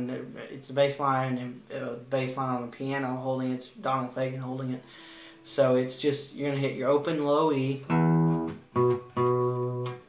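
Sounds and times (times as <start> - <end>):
acoustic guitar bass notes plucked: 7.8 - 10.0.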